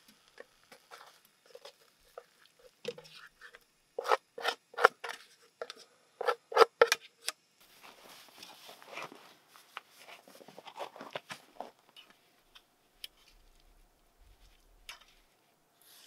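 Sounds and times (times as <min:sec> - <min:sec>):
utensil scraping frying pan: 0:00.7 - 0:05.2.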